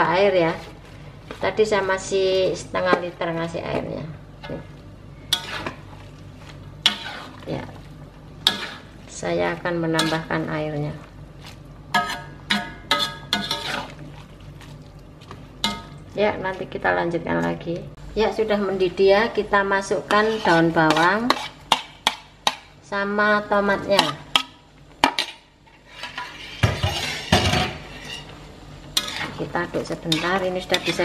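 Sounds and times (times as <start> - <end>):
utensils clattering on cookware: 24.0 - 28.3.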